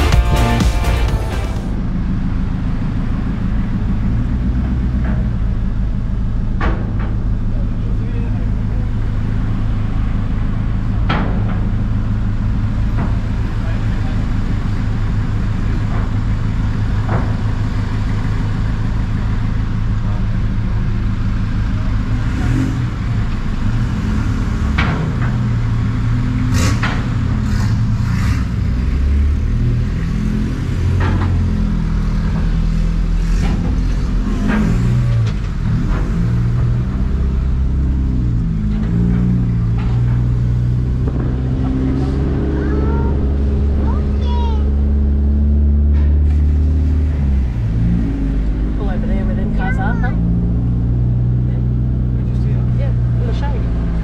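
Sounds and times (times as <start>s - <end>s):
vehicle engine droning: 0.0s - 54.0s.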